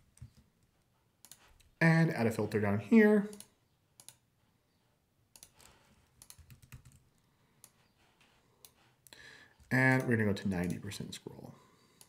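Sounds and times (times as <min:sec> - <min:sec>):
mouse and keyboard clicks: 0:01.2 - 0:01.7, 0:05.4 - 0:07.0.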